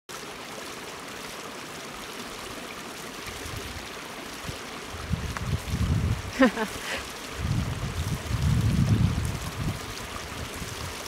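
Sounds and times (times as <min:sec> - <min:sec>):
mountain stream rushing: 0:00.1 - 0:11.0.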